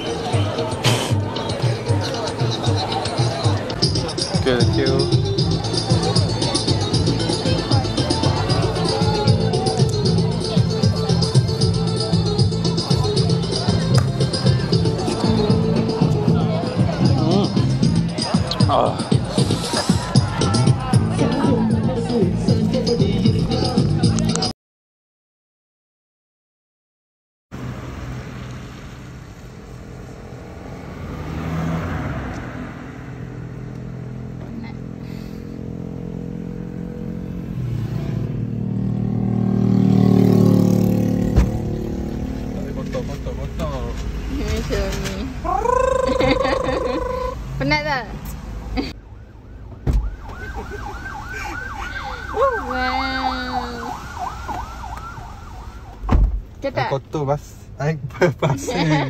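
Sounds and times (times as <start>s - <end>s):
car engines passing: 0.0s - 24.5s, 27.5s - 59.0s.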